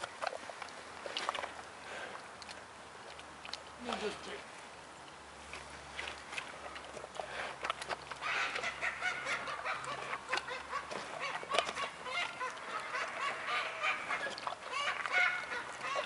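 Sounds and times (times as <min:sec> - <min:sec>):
flock of birds calling: 0:08.2 - 0:16.0.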